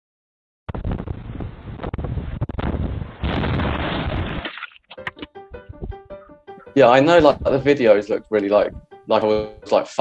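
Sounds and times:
wind buffeting microphone: 0.7s - 3.8s, 5.6s - 6.1s, 7.1s - 7.9s, 8.5s - 9.6s
brick wall collapsing: 0.8s - 4.9s.

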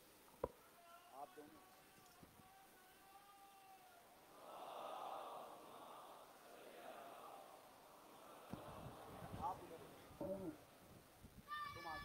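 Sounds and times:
faint soft rush of noise: 0.0s - 12.0s.

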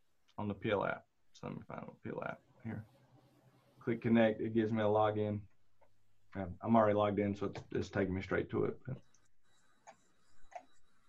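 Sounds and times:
computer mouse clicks: 9.0s - 11.0s.

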